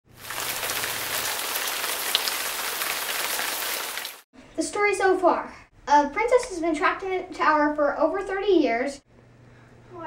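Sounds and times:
steady rain falling: 0.1s - 4.2s.

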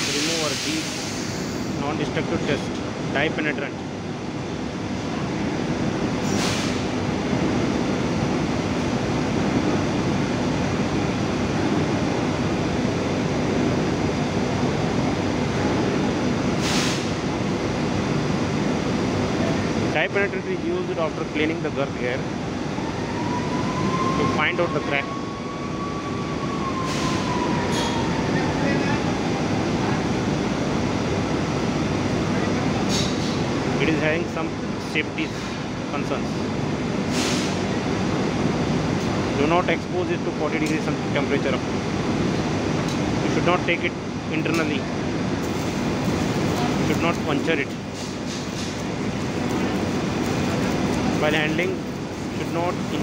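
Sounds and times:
industrial machinery rumbling: 0.0s - 53.0s.

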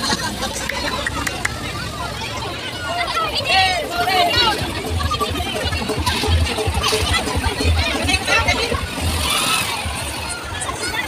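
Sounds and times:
crowd voices: 0.0s - 11.0s
truck engine running: 0.0s - 11.0s.

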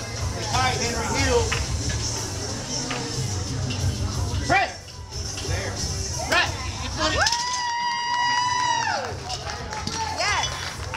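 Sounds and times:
crowd noise: 0.0s - 10.9s
high-pitched cheer: 7.1s - 9.2s.

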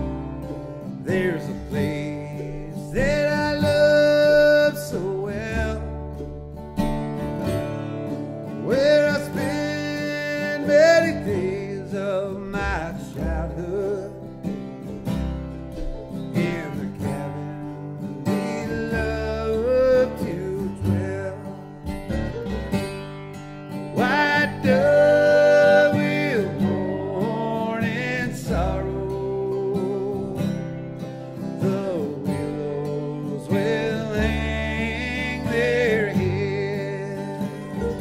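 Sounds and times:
acoustic guitar: 0.0s - 38.0s
banjo: 0.0s - 38.0s
bass: 0.0s - 38.0s
mandolin: 0.0s - 38.0s.

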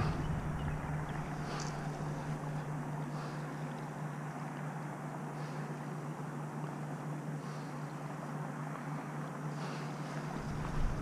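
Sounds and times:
distant motor drone: 0.0s - 11.0s
outdoor background noise: 0.0s - 11.0s.

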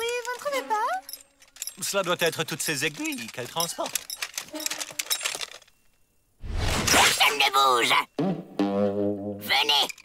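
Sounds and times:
metallic jangling: 0.0s - 6.0s.

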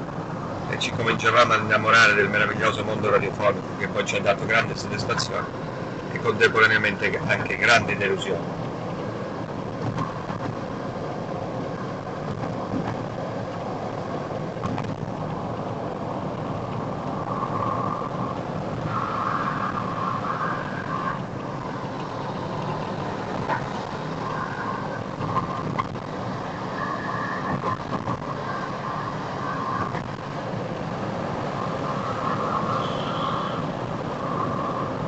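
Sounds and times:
car engine while driving: 0.0s - 35.0s
tyre noise on road: 0.0s - 35.0s.

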